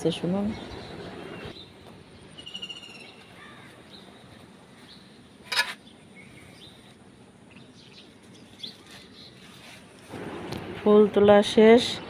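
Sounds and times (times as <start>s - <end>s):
birds chirping and trilling: 0.0s - 9.7s.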